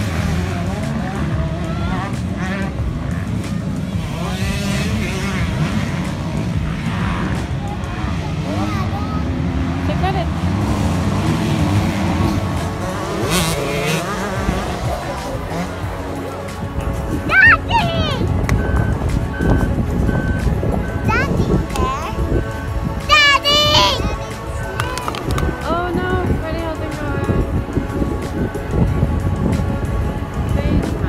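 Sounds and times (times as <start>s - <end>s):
crowd voices: 0.0s - 31.0s
motorcycle engines droning: 0.0s - 31.0s.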